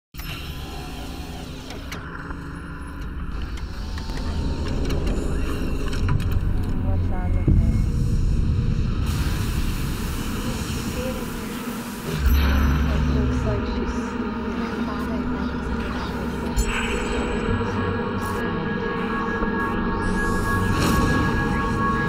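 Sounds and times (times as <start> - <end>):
deep rumbling drone: 0.5 - 22.0.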